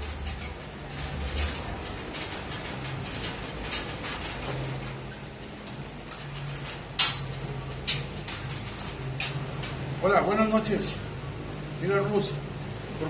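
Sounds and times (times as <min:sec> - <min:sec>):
cable machine rattling: 0:00.0 - 0:12.4.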